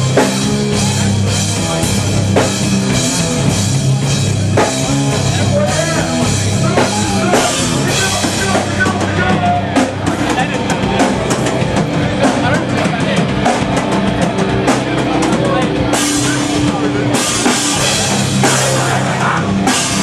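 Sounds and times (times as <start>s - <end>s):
hardcore band playing loud: 0.0s - 20.0s
rapid drum hits: 0.0s - 20.0s.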